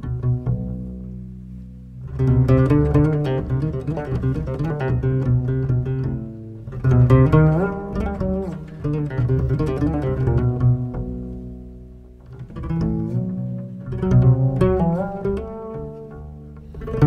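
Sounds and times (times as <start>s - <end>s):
double bass plucked notes: 0.0s - 17.0s.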